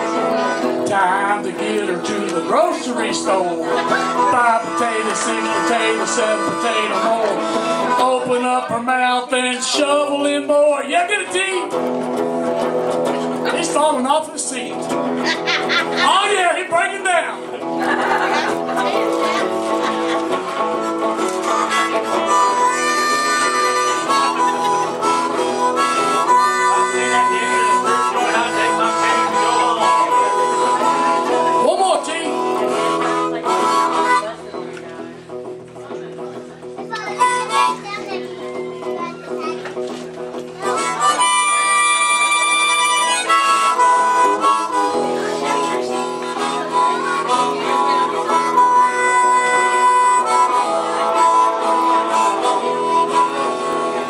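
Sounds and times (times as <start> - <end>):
blues harmonica solo: 0.0 - 54.0
electric guitar accompaniment: 0.0 - 54.0.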